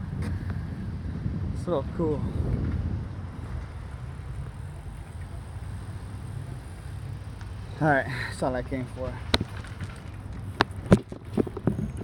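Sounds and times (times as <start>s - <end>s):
wind rumble on microphone: 0.0s - 7.8s, 8.7s - 12.0s
bike tyres on asphalt: 0.0s - 12.0s.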